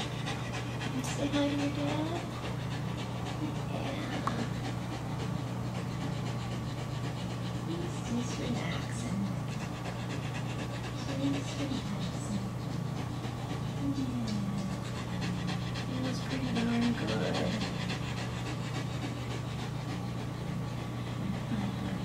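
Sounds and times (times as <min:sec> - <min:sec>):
dog panting: 0:00.0 - 0:22.0
steady low hum: 0:00.0 - 0:22.0.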